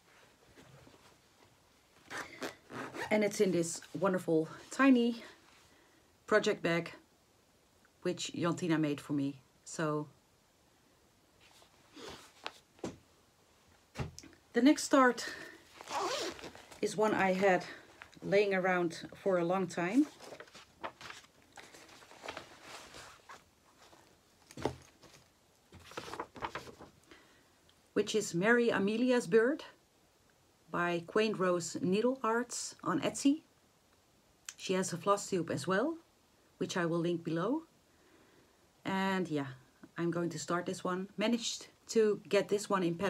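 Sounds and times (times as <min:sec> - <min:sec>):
fabric bag rustling: 0:15.1 - 0:26.9.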